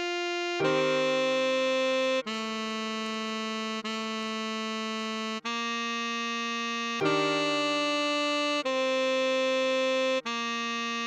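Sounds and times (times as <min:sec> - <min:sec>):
synthesized saxophone melody: 0:00.0 - 0:11.0.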